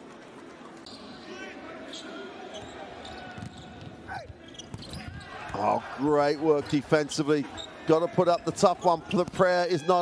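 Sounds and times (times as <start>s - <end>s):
sneaker squeaks: 0.8s - 1.2s, 1.9s - 5.5s, 7.4s - 9.0s.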